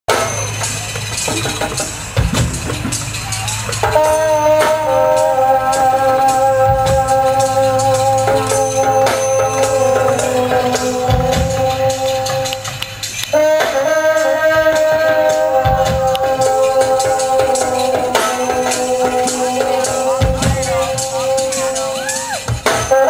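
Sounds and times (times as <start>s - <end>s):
djembe hits: 0.1s - 5.3s
long held instrument notes: 0.1s - 23.0s.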